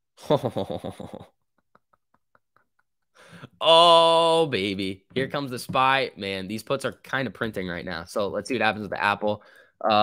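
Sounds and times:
man laughing: 0.2 - 4.4.

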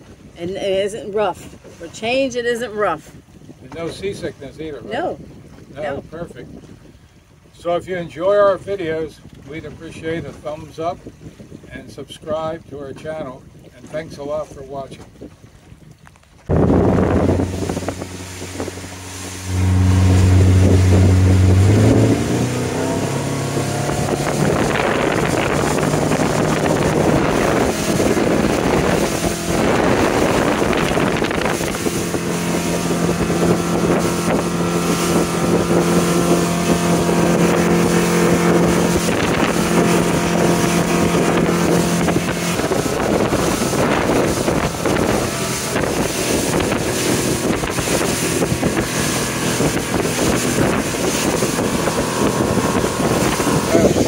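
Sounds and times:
wind buffeting microphone: 0.0 - 54.0
motorboat engine: 16.2 - 54.0.

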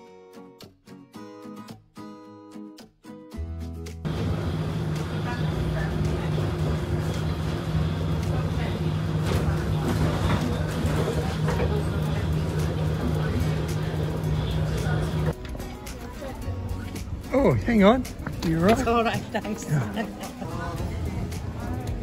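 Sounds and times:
bus engine drone: 4.1 - 15.4.

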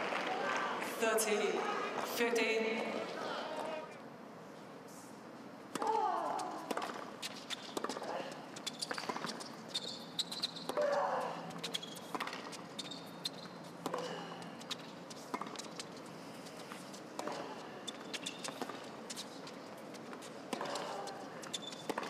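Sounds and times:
racket hitting tennis ball: 5.7 - 9.6, 10.5 - 12.8, 16.7 - 22.0
shoe squeaks on court: 8.6 - 13.8, 17.3 - 19.4, 21.4 - 22.0.

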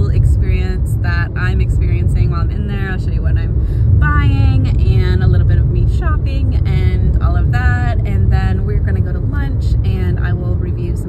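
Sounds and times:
low rumble of car cabin: 0.0 - 11.0
woman talking: 0.0 - 11.0.

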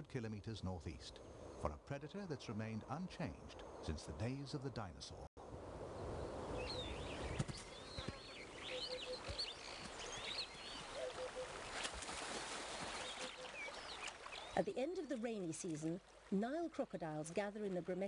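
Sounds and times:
birds chirping: 6.0 - 18.0.

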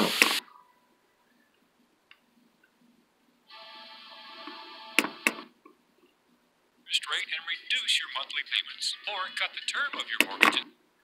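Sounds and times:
radio music through headphones: 0.0 - 0.7, 3.5 - 5.5, 6.9 - 10.8.

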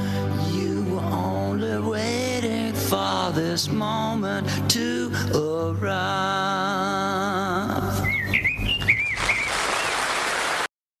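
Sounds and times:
warbling birdlike whistle: 8.0 - 10.2
audience applause: 9.1 - 10.7.

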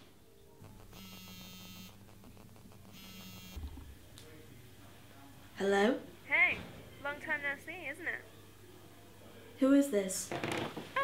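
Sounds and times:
smartphone buzzing: 0.6 - 3.8
low thump: 3.6 - 4.0.

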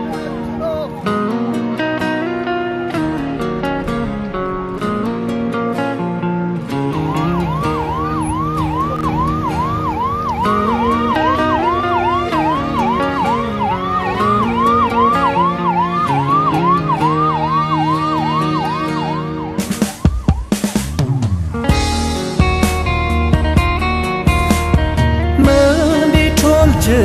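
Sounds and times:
ambulance siren: 0.0 - 2.5, 6.7 - 21.5
background guitar music: 0.0 - 27.0.

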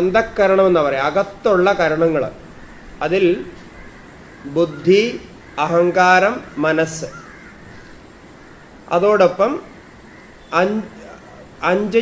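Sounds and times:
man lecturing: 0.0 - 2.4, 4.5 - 7.2, 10.5 - 12.0.

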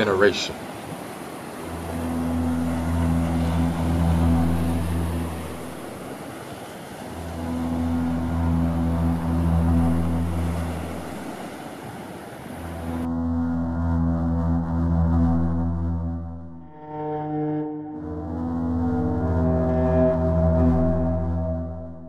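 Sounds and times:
deep droning tone: 1.6 - 6.1, 7.1 - 11.4, 12.6 - 22.0.

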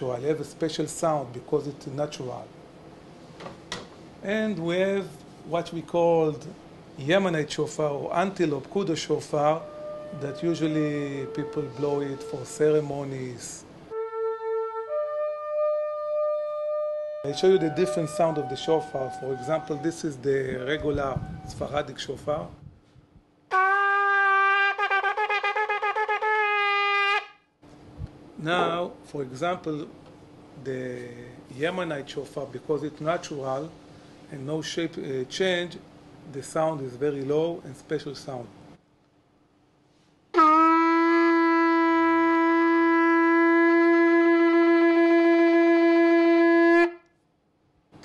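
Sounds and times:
ram's horn blowing: 9.2 - 13.1, 13.9 - 21.7, 23.5 - 27.4, 40.3 - 47.1.

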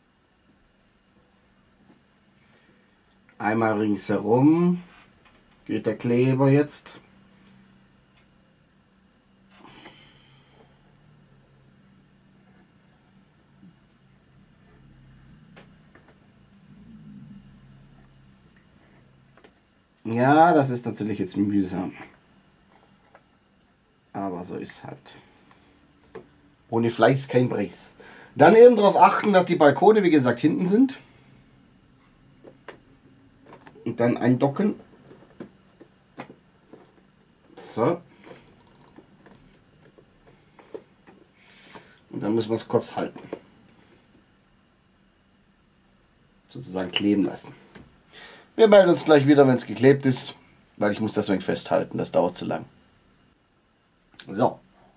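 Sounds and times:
faint low hum: 0.0 - 54.9
soft handling noise: 31.9 - 44.3.

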